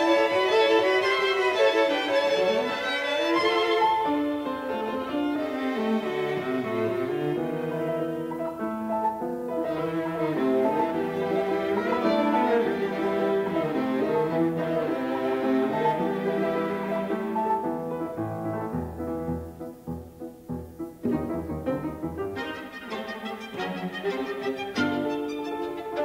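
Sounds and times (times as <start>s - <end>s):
piano quintet chamber music: 0.0s - 26.0s.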